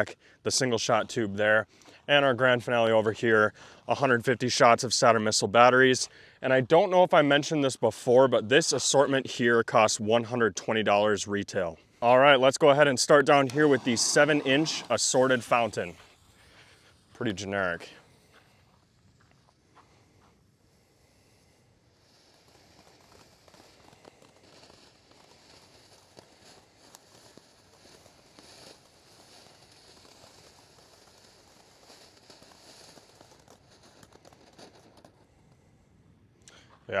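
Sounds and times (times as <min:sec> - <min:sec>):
firework fountain hissing: 0:11.5 - 0:35.8
small crackles: 0:11.5 - 0:37.0.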